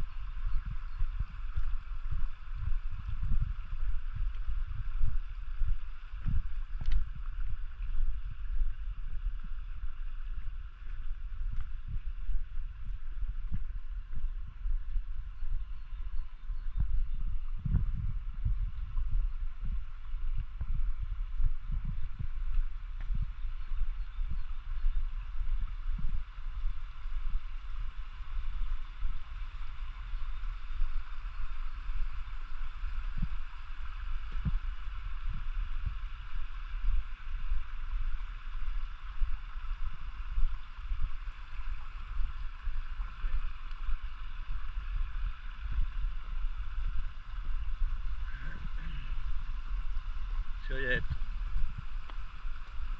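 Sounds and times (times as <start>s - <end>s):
wind buffeting microphone: 0.0s - 52.9s
mountain stream rushing: 24.7s - 52.9s.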